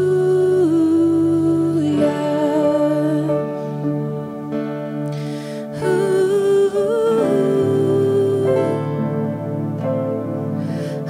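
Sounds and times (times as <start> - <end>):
woman singing: 0.0 - 4.5, 5.4 - 10.3
soft guitar accompaniment: 0.0 - 11.0.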